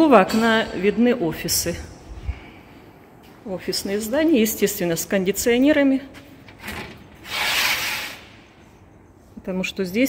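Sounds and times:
rubbing scraping noise: 0:07.2 - 0:08.4.

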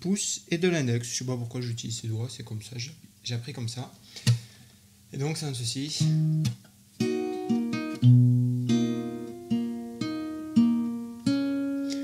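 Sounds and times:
fingerstyle acoustic guitar: 0:06.0 - 0:12.0.

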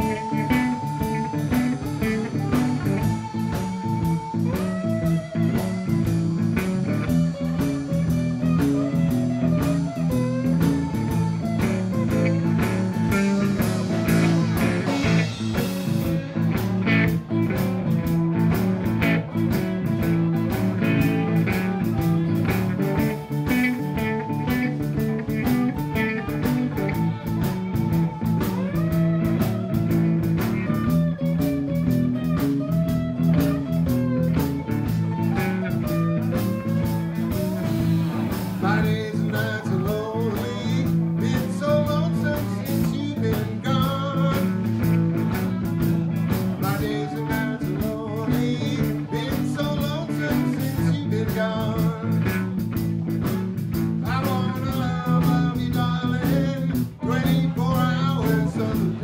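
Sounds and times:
bass guitar: 0:00.0 - 0:59.0
electric guitar lead with bent notes: 0:00.0 - 0:59.0
steady drum beat: 0:00.0 - 0:59.0.

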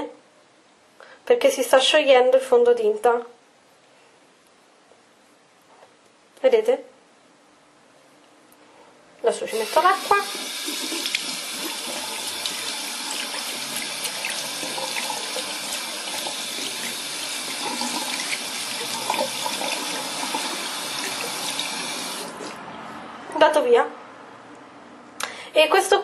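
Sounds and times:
tap water splashing into basin: 0:10.0 - 0:22.4.

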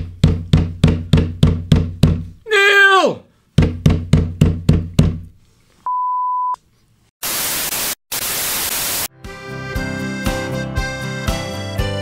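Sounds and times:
white-noise static bursts: 0:07.2 - 0:09.1.

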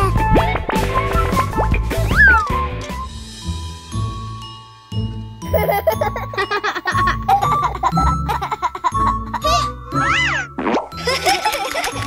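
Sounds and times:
children's background music: 0:00.0 - 0:12.0.

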